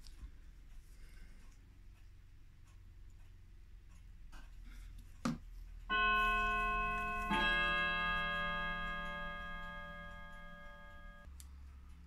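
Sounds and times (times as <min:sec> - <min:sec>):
bell-like chime notes: 0:05.9 - 0:11.3.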